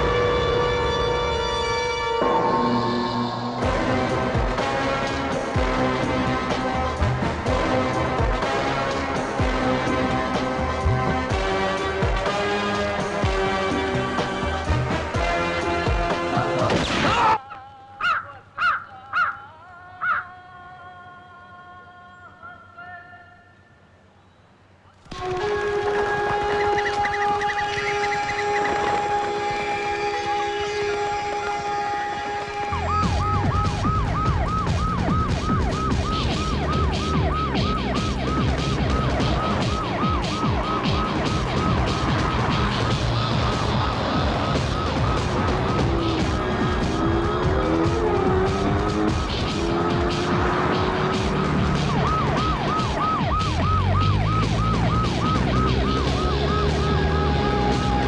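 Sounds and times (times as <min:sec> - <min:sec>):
sustained musical notes: 0:25.1 - 0:58.0
siren-like warble: 0:26.6 - 0:58.0.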